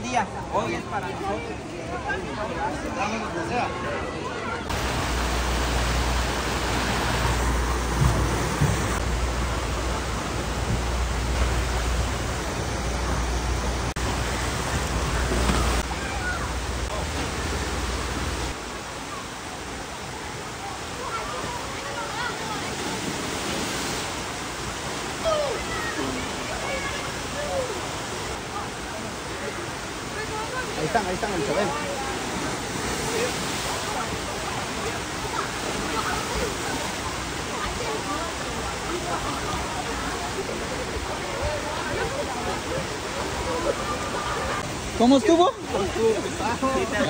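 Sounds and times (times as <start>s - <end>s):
churning pool water: 0.0s - 47.0s
people's voices: 0.0s - 47.0s
water splashing from slides: 4.2s - 47.0s.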